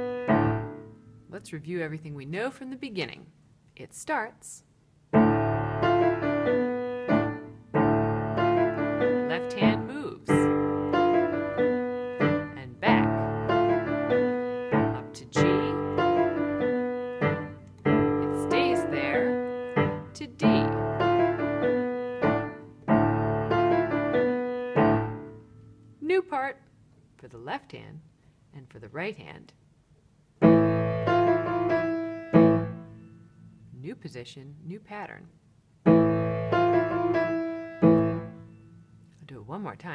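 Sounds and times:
solo piano playing: 0.0s - 1.3s, 5.1s - 25.8s, 30.4s - 33.6s, 35.8s - 39.0s.

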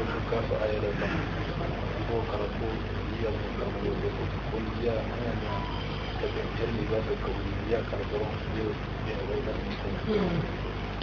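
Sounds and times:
muffled voice talking: 0.0s - 10.6s
steady low hum: 0.0s - 11.0s.

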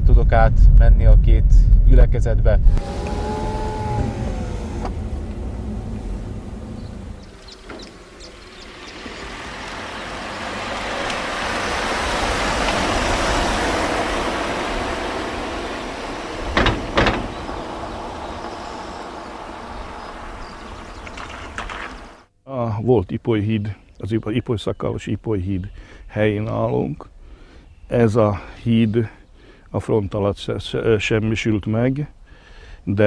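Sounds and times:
road rumble inside moving car: 2.5s - 22.2s
sharp thumps: 2.6s - 8.2s, 13.8s - 22.3s
car driving past: 2.7s - 22.2s.

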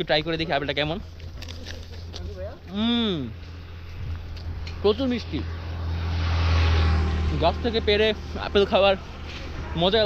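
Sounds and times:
vehicle passing by: 3.0s - 10.0s.

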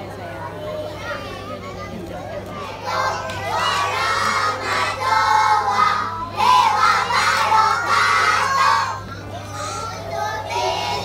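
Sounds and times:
murmur of voices: 0.0s - 11.0s
children chanting: 2.8s - 11.0s.

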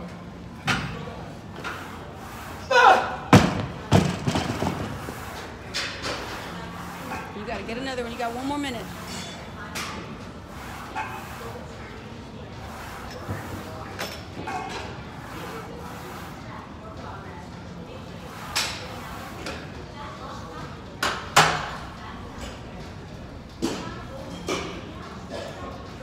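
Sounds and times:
murmur of distant voices: 0.0s - 26.0s.

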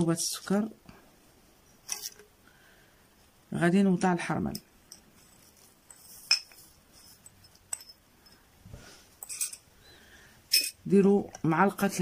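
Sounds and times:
soft rustle: 4.9s - 9.6s
kitchenware clinking: 5.8s - 8.4s, 9.2s - 9.7s, 10.5s - 10.8s.

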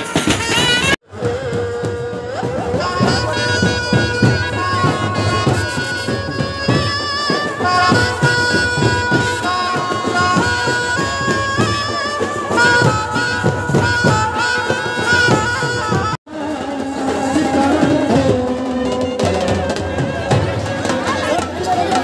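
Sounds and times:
quick drum beats: 0.0s - 16.2s
wind instrument melody: 0.0s - 22.0s.

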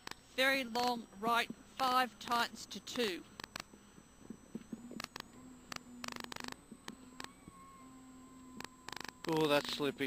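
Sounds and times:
sharp clicks and rattles: 3.4s - 3.7s.

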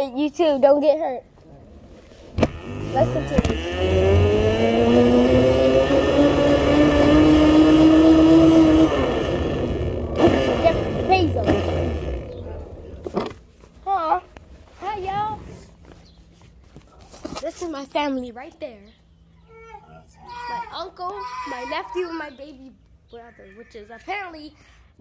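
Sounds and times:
electric motor whining: 2.3s - 13.3s
short voices: 8.5s - 13.1s.

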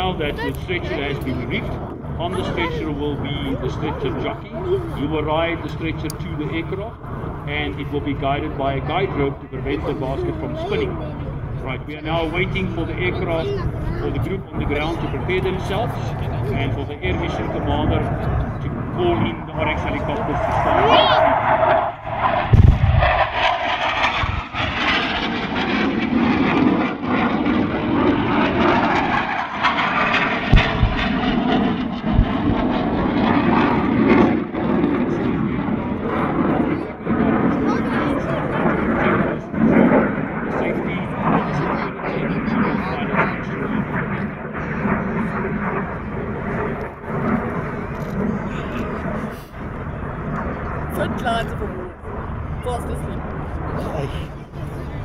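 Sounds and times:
military aircraft flying over: 0.0s - 55.0s
explosion thuds: 22.1s - 25.0s, 29.7s - 33.1s.

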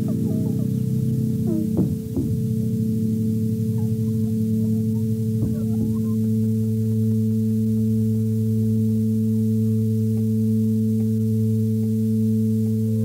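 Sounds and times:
high wavering electronic squiggles: 0.0s - 8.6s
low electronic drone: 0.0s - 13.0s.

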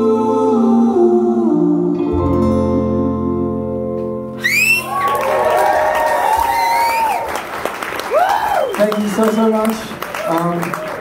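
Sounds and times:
acoustic guitars chord: 0.0s - 4.9s
audience applause and cheers: 4.4s - 11.0s.

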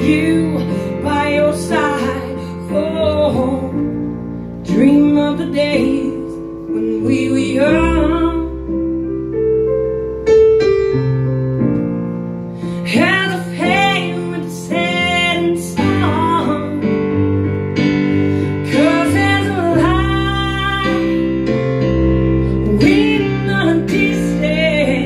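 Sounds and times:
woman singing blues: 0.0s - 4.0s, 4.6s - 8.6s, 12.8s - 17.2s, 18.4s - 21.6s, 22.4s - 25.0s
sustained keyboard chords: 0.0s - 25.0s.

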